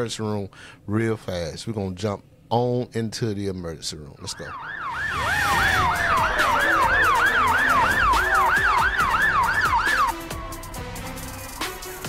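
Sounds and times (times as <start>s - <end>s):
slow falling tone: 4.3s - 10.4s
siren yelp: 4.3s - 10.5s
low rumble: 4.8s - 9.6s.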